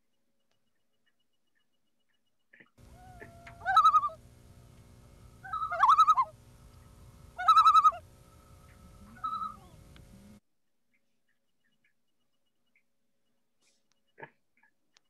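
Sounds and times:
loon tremolo calls: 0.6 - 10.4
low steady hum: 2.8 - 10.4.

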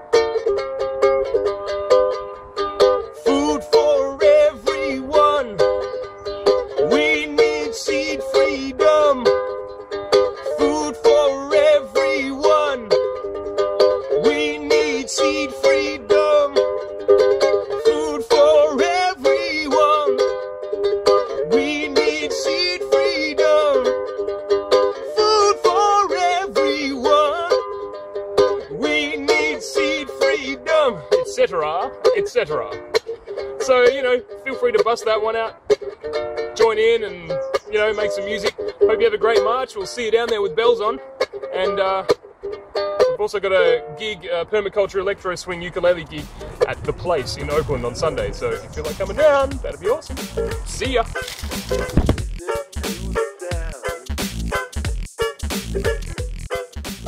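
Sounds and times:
ukulele strumming: 0.0 - 57.0.

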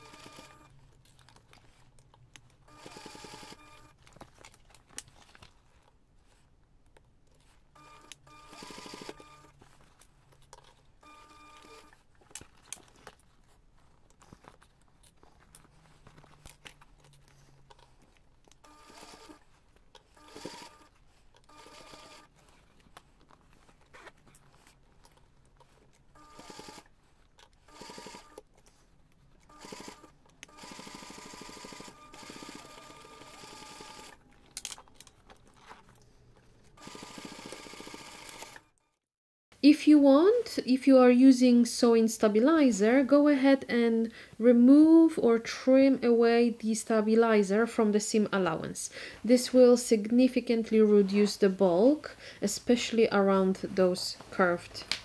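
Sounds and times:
sewing machine stitching: 0.0 - 0.8, 2.6 - 4.2, 7.8 - 9.8, 10.6 - 13.1, 18.6 - 22.7, 25.6 - 26.9, 27.5 - 28.4, 29.5 - 34.2, 36.8 - 38.7.

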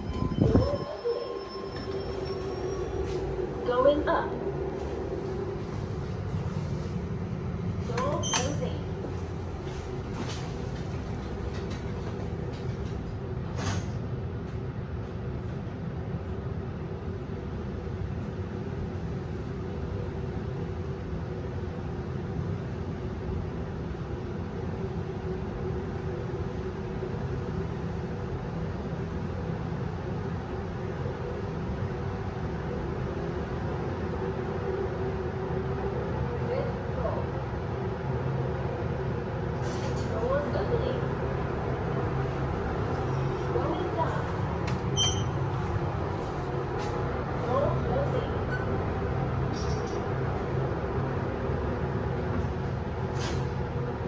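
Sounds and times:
lift doors sliding open: 0.0 - 3.6, 7.9 - 14.5, 39.5 - 40.4, 41.5 - 47.2, 48.2 - 53.8
lift car hum and rumble: 0.0 - 54.0.

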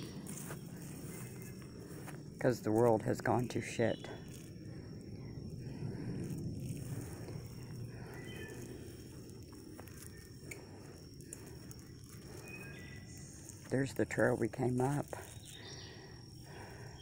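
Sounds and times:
rustling footsteps in brush: 0.0 - 5.0, 6.6 - 15.8
high insect drone: 0.0 - 17.0
bird chirps: 8.1 - 8.9, 12.3 - 13.6, 15.2 - 17.0.

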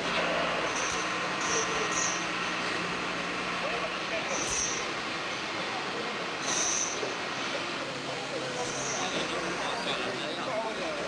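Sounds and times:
faint indistinct voices: 0.0 - 11.0
noisy background: 0.0 - 11.0.

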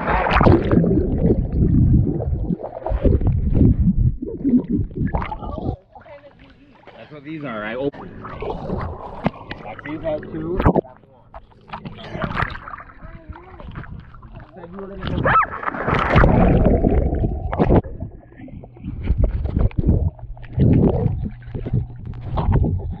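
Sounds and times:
water splashing and bubbling: 0.0 - 7.0, 7.9 - 23.0
muffled voices: 5.3 - 15.4.

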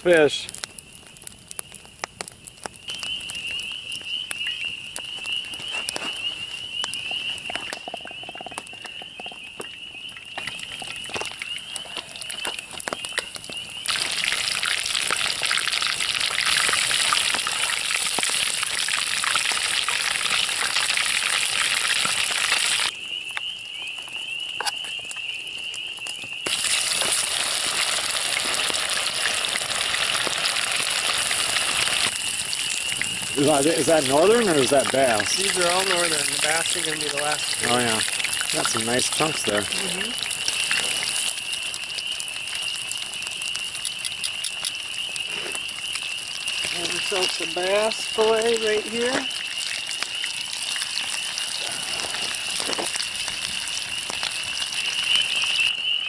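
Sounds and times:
campfire crackling: 0.0 - 56.0
fish sizzling in hot oil: 0.0 - 56.0.

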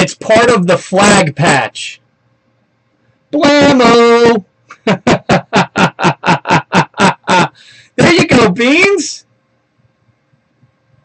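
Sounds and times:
man laughing loudly: 3.6 - 8.2.

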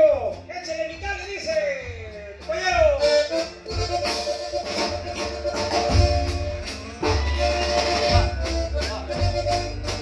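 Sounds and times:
accordion lead: 0.0 - 10.0
drums and guitar: 0.0 - 10.0.

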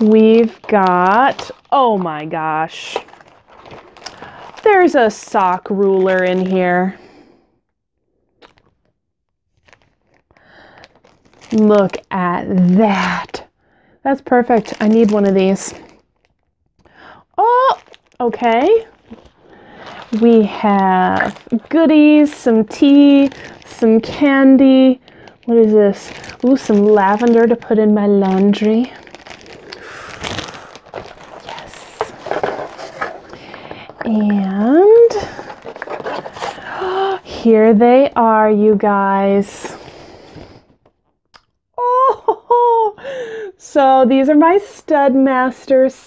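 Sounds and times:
card packaging being handled: 0.0 - 6.8, 9.6 - 13.3, 17.5 - 37.1
crinkling rustle: 0.0 - 6.8, 9.5 - 13.4, 14.3 - 17.0, 17.6 - 37.5.

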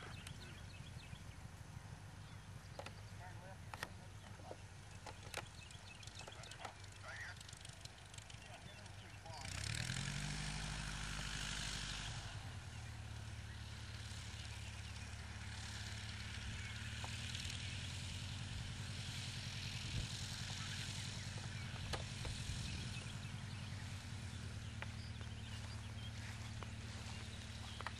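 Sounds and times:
plane engine and propeller taxiing: 0.0 - 27.9.

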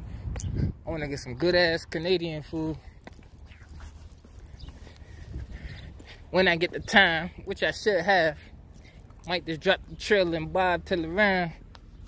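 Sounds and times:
wind rumbling on microphone: 0.0 - 7.5
footsteps on asphalt: 1.4 - 12.0.

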